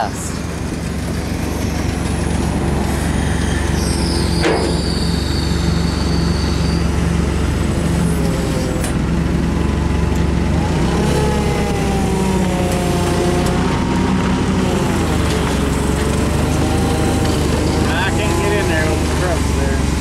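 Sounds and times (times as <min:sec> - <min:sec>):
forklift engine humming: 0:00.0 - 0:20.0.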